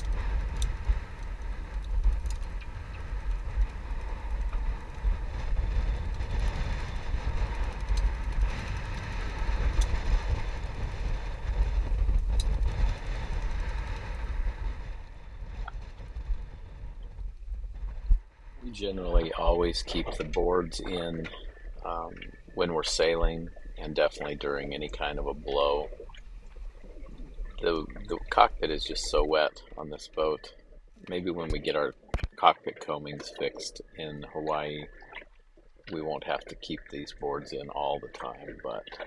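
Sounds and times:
gale wind: 0:00.0 - 0:39.0
sea: 0:00.0 - 0:39.0
wind buffeting microphone: 0:00.0 - 0:39.0.

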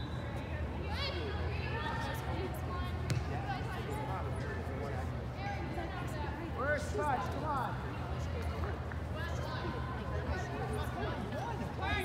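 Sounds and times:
soccer ball kick thud: 0:03.0 - 0:03.4.

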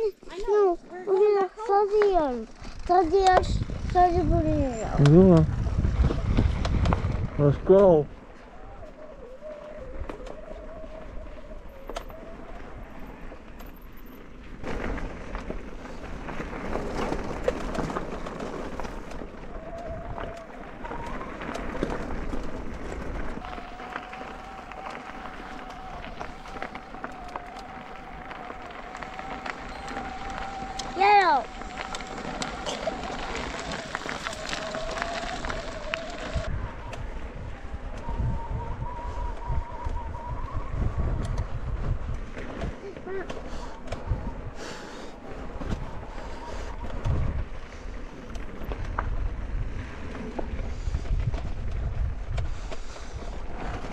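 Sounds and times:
mountain bike rolling on dirt: 0:00.0 - 0:53.9
wind: 0:00.0 - 0:53.9
child calling out: 0:23.4 - 0:36.4, 0:42.8 - 0:43.4.

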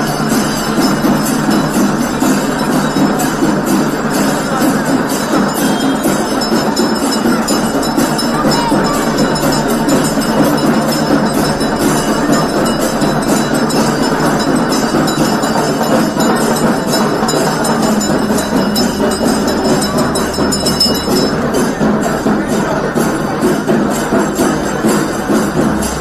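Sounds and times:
procession music: 0:00.0 - 0:23.0
crowd noise: 0:00.0 - 0:26.0.

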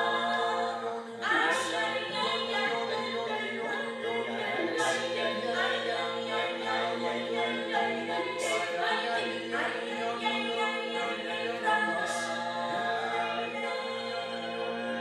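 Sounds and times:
voices singing a cappella: 0:00.0 - 0:15.0.

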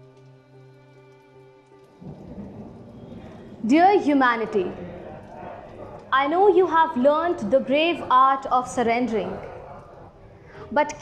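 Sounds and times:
music holding low note: 0:00.0 - 0:05.9
low rumbling noise: 0:02.0 - 0:08.1.

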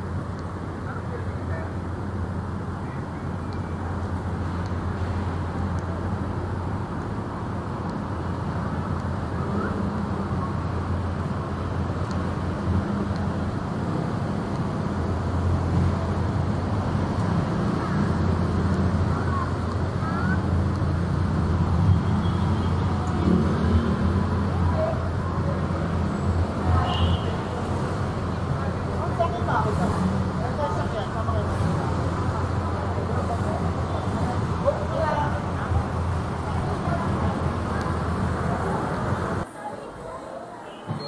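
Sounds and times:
cars idling and moving: 0:00.0 - 0:40.2
faint voices: 0:15.5 - 0:41.0.

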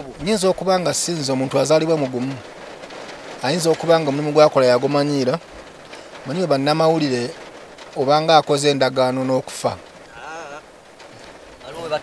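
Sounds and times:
man's drawn-out hesitation sound: 0:06.2 - 0:12.0.

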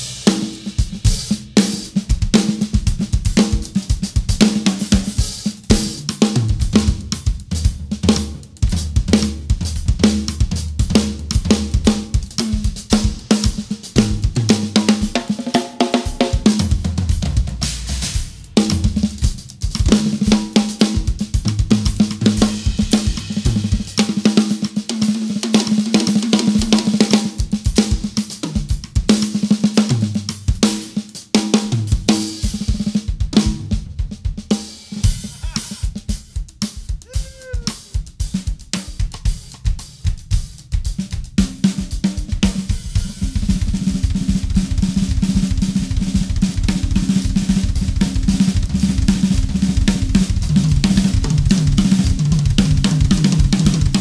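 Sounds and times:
drum kits played fast: 0:00.0 - 0:54.0
tom fills: 0:37.0 - 0:38.0.

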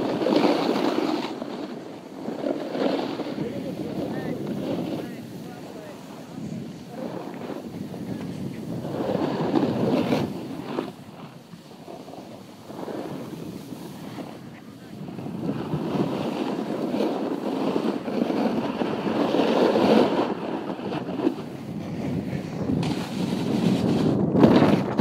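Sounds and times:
snowboard scraping on snow: 0:00.0 - 0:25.0
wind on microphone: 0:00.0 - 0:25.0.

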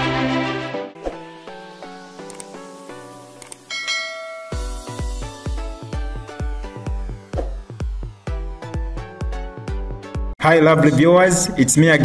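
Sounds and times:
intro music: 0:00.0 - 0:11.2
electronic dance beat: 0:01.7 - 0:10.4
bell-like chime: 0:03.7 - 0:05.4.

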